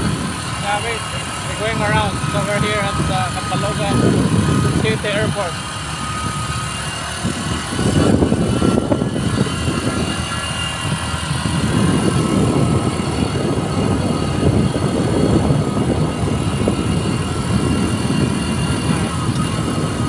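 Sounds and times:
motorbike engine running: 0.0s - 20.0s
wind rushing over microphone: 0.0s - 20.0s.

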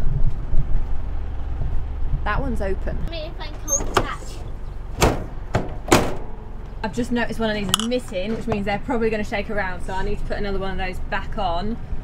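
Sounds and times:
vent hatch knocks: 5.0s - 6.4s.

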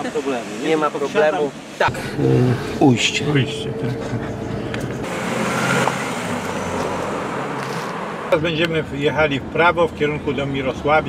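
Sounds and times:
car driving past: 1.9s - 8.4s.

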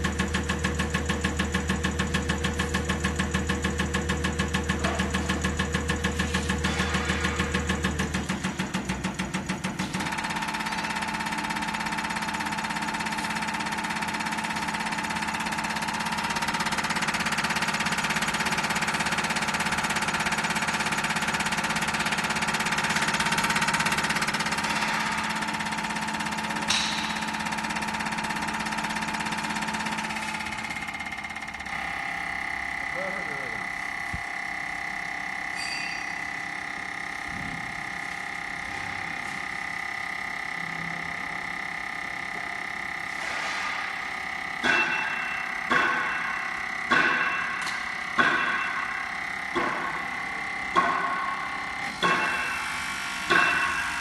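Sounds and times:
test bench pump hum: 0.0s - 54.0s.

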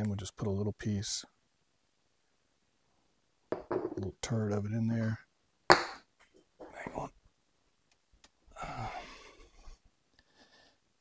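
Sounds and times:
man speaking: 6.6s - 7.1s.

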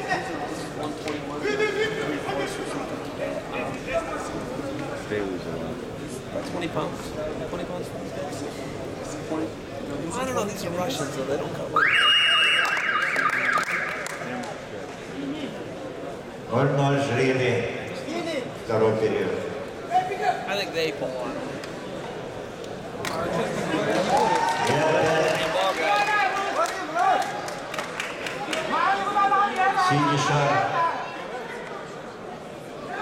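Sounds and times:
indistinct speech in a hall: 0.0s - 33.0s.

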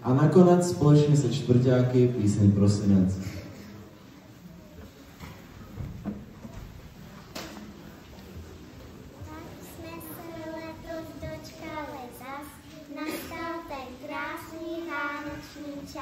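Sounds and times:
low murmuring: 1.2s - 16.0s
children's voices: 9.0s - 16.0s.

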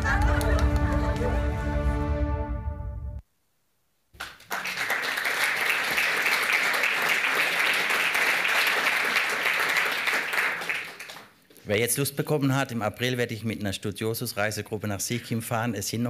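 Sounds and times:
audience applauding: 0.0s - 1.5s, 4.2s - 11.4s.

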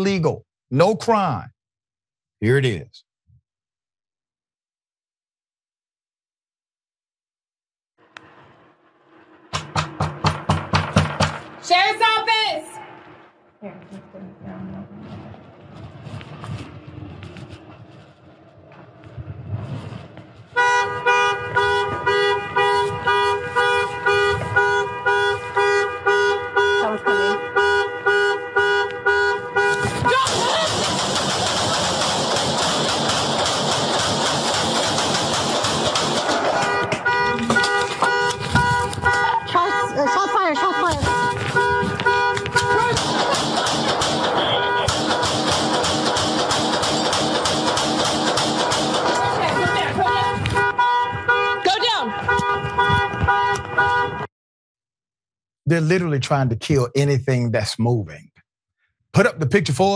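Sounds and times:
loud rushing noise: 8.0s - 12.2s
pulsing alarm horn: 20.6s - 30.6s, 36.3s - 43.0s, 44.3s - 45.0s, 49.1s - 54.3s.

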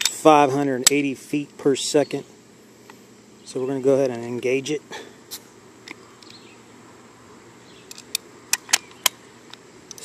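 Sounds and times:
plastic and metal pistol clicks: 7.9s - 10.0s.

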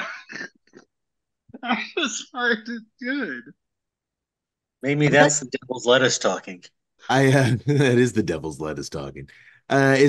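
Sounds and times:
men talking over a call: 4.8s - 10.0s
man laughing: 7.1s - 8.2s.

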